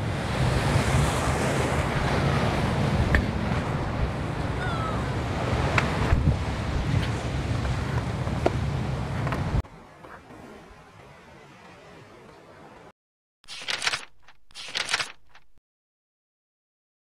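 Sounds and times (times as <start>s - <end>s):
wind buffeting microphone: 5.3s - 9.6s
short clicks: 13.5s - 15.6s.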